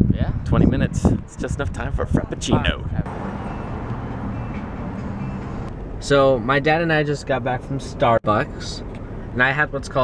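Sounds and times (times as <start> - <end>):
low vehicle hum: 0.0 - 10.0
traffic noise: 0.0 - 10.0.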